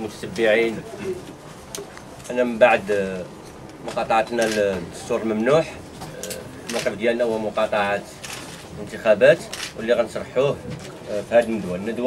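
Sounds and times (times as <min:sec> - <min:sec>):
man speaking: 0:00.0 - 0:01.2, 0:02.3 - 0:03.3, 0:03.9 - 0:08.2.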